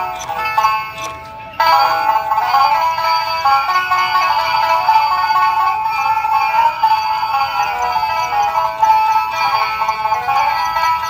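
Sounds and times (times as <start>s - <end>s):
electronic tune from toy speakers: 0.0s - 11.0s.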